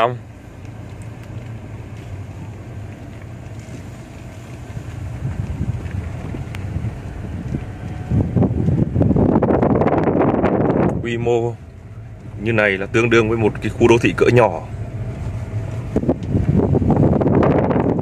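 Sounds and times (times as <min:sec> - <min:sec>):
low rumble: 0:00.0 - 0:18.0
wind buffeting microphone: 0:00.6 - 0:18.0.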